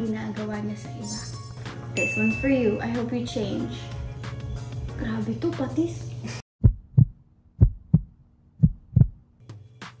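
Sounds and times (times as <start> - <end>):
heartbeat thuds: 6.6 - 9.2.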